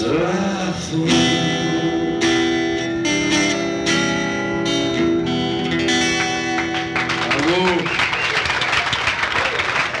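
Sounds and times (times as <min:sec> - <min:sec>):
audience applauding: 0:06.0 - 0:10.0
voices cheering: 0:07.2 - 0:10.0.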